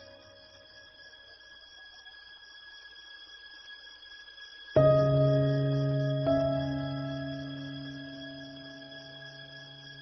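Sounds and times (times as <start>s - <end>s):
faint high-pitched whine: 0.0s - 10.0s
low hiss: 0.0s - 10.0s.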